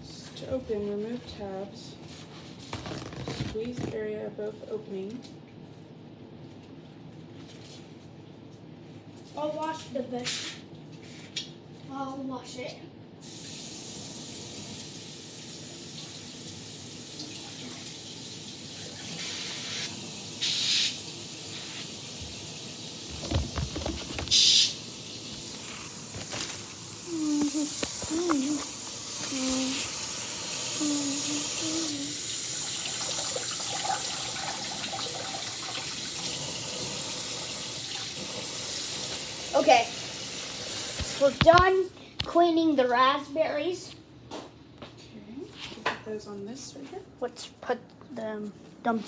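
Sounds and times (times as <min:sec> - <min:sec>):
kitchen faucet running: 0:13.2 - 0:41.2
knocks on plastic container: 0:23.1 - 0:24.4.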